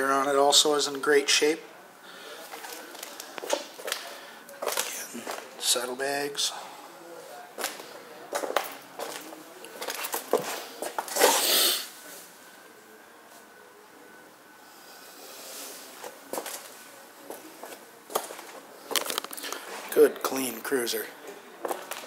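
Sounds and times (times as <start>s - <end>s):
footsteps in small room: 2.4s - 5.6s, 7.3s - 11.4s, 16.0s - 20.0s.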